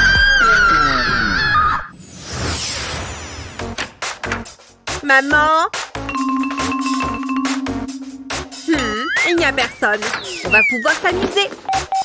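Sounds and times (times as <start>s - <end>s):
background music: 6.0s - 9.9s.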